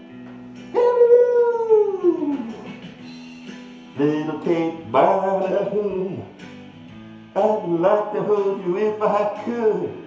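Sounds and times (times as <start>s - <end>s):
soft backing music: 0.0s - 10.0s
wolf-style howl: 0.7s - 2.5s.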